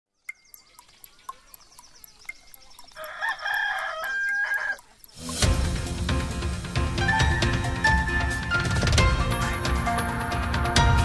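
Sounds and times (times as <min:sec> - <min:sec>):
clock ticking: 0:00.2 - 0:06.0
rooster crowing: 0:03.0 - 0:04.9
theme music: 0:05.2 - 0:11.0.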